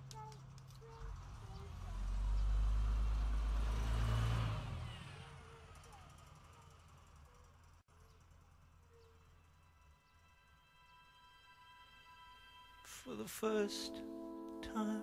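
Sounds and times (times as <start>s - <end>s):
vehicle passing by: 1.0s - 8.3s.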